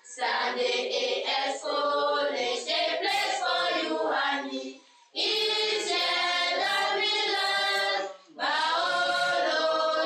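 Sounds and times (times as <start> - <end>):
girls singing in chorus: 0.0 - 10.0.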